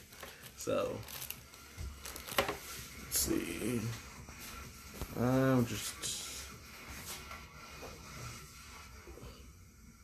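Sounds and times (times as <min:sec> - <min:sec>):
rustling and handling noise: 0:00.0 - 0:09.5.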